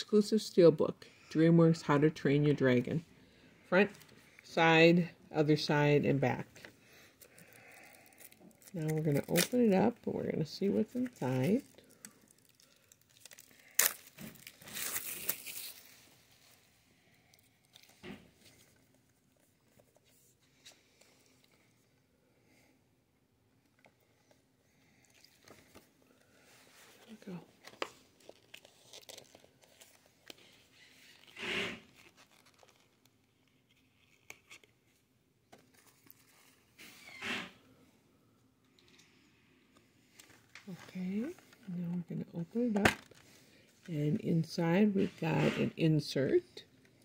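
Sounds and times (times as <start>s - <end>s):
plastic crinkling and rustling: 6.6s - 21.6s, 25.0s - 36.8s
plastic wrap ripping: 7.2s - 9.8s, 10.8s - 16.2s, 27.0s - 34.8s.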